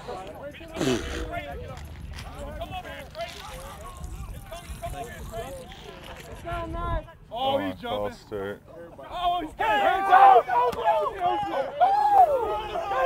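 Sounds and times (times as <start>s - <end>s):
men talking and calling: 0.0s - 13.0s.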